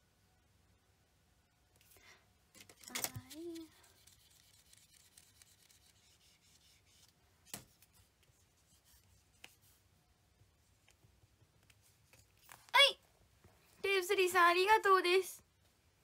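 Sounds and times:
marker pen writing on whiteboard: 3.2s - 9.8s.

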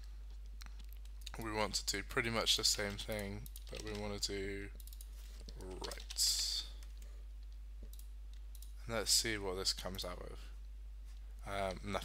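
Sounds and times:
steady low hum: 0.0s - 12.0s
computer keyboard and mouse clicks: 6.8s - 8.8s.

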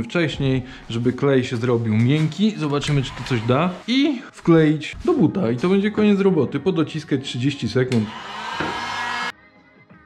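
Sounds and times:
faint music with a beat: 0.0s - 8.2s
hot-air gun blowing: 8.0s - 9.3s.

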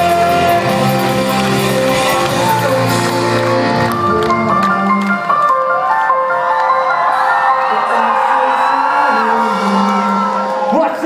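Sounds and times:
crowd cheering and screaming: 0.0s - 11.0s.

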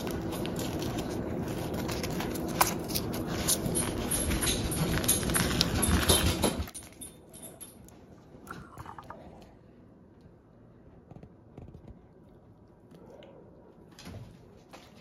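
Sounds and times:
paper cupcake liner crinkling: 0.0s - 4.1s.

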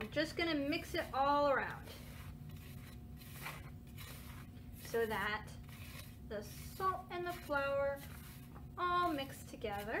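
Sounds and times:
hand stirring flour in glass bowl: 0.0s - 10.0s.

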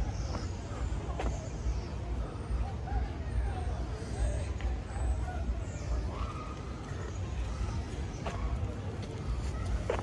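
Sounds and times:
low street rumble: 0.0s - 10.0s.

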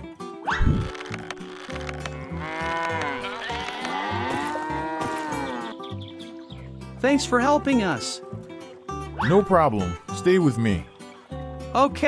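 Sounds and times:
light background music: 0.0s - 12.0s
cow mooing: 2.2s - 5.8s.

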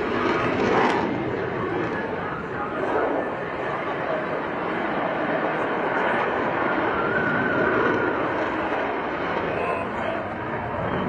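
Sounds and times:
faint jet whine: 0.0s - 11.0s
jet flying past: 0.0s - 11.0s.

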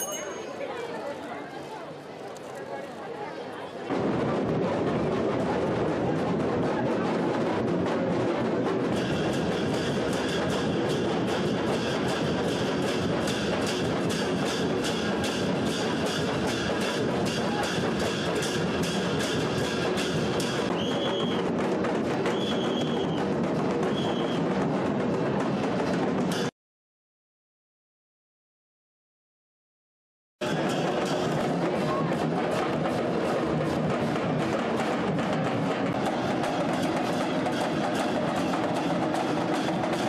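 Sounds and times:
short high held tone: 0.0s - 0.6s
barrel drums beaten fast: 3.9s - 26.5s, 30.4s - 40.0s.

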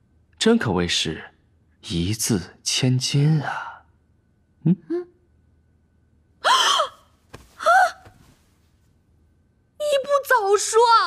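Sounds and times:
woman gasping: 6.4s - 8.3s.

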